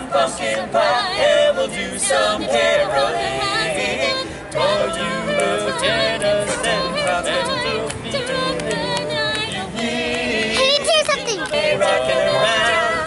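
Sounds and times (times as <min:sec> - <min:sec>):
mixed quartet singing in harmony: 0:00.0 - 0:13.0.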